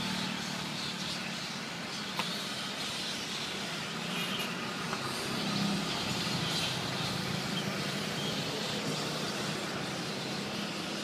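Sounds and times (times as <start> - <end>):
low hum of traffic: 0.0 - 11.0.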